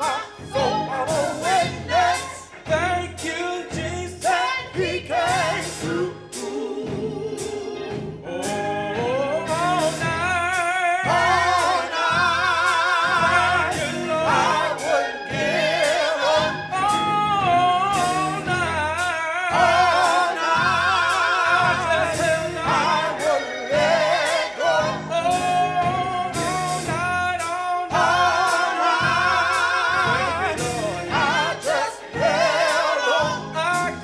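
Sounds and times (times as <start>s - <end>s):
bass line: 0.0s - 34.0s
drum beats: 0.0s - 34.0s
voices singing gospel song: 0.0s - 34.0s.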